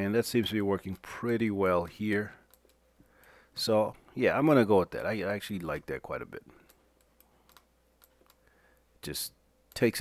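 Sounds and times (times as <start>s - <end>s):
keyboard and mouse clicks: 2.4s - 3.4s, 6.6s - 8.5s.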